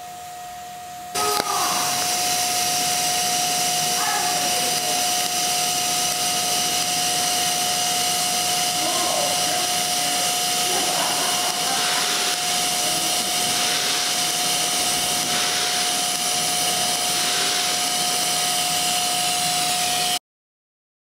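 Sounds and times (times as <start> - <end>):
steady high tone: 1.1 - 20.2
welding arc hissing: 1.1 - 20.2.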